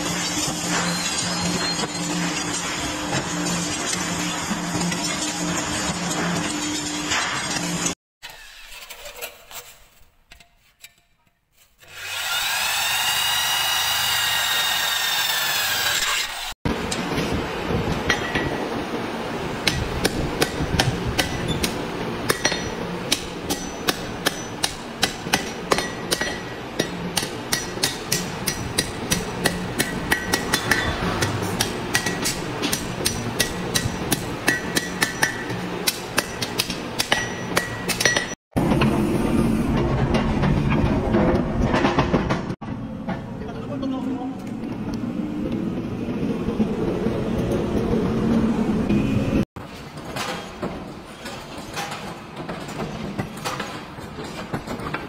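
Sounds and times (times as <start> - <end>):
hammer striking steel on anvil: 18.1 - 18.6, 19.6 - 38.4.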